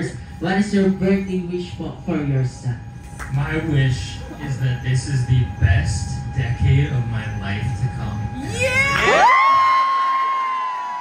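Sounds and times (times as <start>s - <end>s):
high-pitched cheering whoop: 8.4s - 11.0s.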